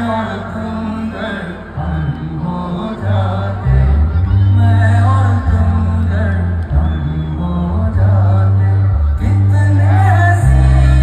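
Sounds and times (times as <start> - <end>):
heavy bass: 0.0 - 11.0
man singing long notes: 0.0 - 11.0
live band music through pa: 4.4 - 11.0.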